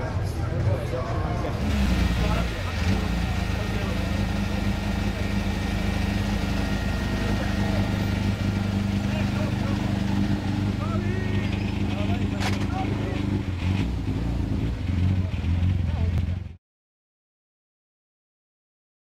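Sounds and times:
car engine starting and idling: 1.4s - 16.6s.

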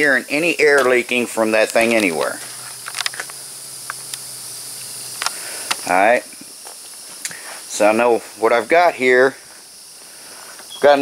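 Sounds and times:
insects chirping chorus: 0.0s - 11.0s.

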